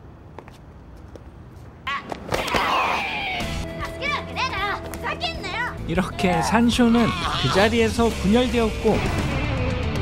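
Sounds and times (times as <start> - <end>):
young women crying out: 6.3 - 7.7.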